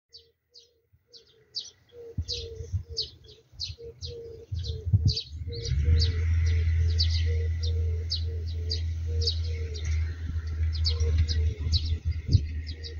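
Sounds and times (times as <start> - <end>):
small bird chirping: 0.1 - 12.9
low rumble: 4.0 - 12.9.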